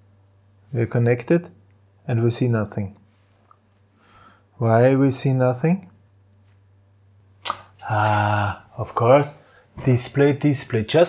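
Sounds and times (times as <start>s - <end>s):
faint low hum: 0.0s - 11.0s
man talking: 0.7s - 3.0s, 4.6s - 5.9s, 7.8s - 11.0s
sharp click: 7.4s - 7.7s.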